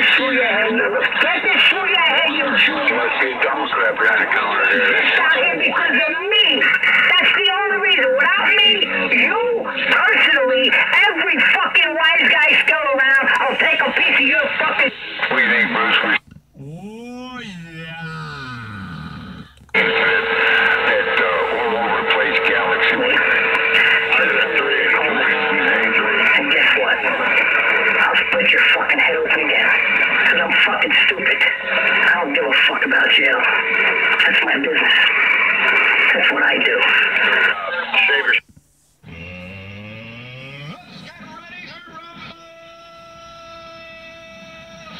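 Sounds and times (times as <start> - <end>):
garbled voices from radio speaker: 1.0 - 33.5, 40.6 - 43.6
radio whistle: 19.6 - 28.5.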